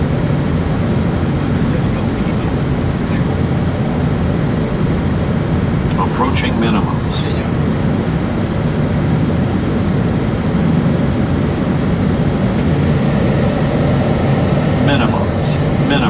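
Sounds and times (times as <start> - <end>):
turboprop engines in cockpit: 0.0 - 16.0.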